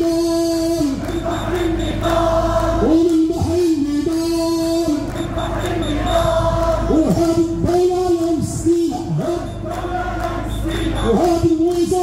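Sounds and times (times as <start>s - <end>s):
crowd singing in unison: 0.5s - 7.7s, 8.5s - 11.5s.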